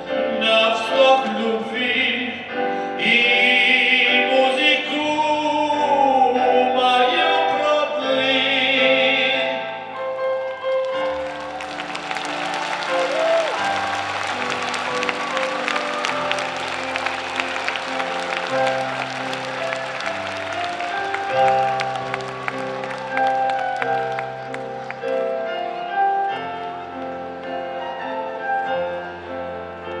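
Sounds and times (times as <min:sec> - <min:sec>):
audience applauding: 0:10.4 - 0:25.3
sustained backing music chords: 0:11.1 - 0:30.0.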